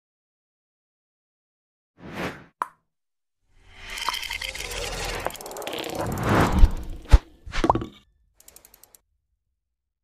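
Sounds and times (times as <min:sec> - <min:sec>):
quick ratchet-like ticks: 0:08.4 - 0:09.0.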